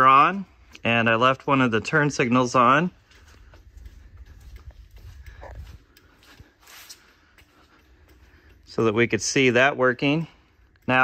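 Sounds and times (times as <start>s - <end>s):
faint footsteps: 0.0s - 11.0s
low rumble of handheld camera: 2.9s - 6.5s.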